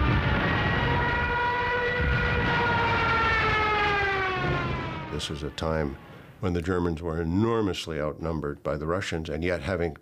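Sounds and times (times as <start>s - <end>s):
dive siren wailing: 0.0s - 6.3s.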